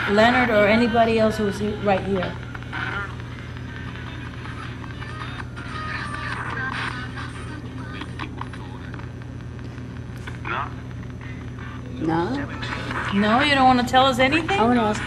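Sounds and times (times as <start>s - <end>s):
faint indistinct voices: 0.0s - 13.8s
steady low hum: 0.0s - 15.0s.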